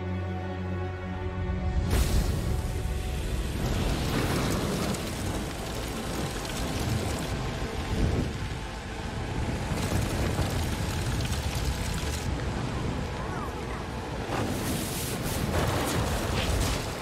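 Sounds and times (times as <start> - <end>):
rumbling fireball: 1.8 - 13.2, 14.2 - 17.0.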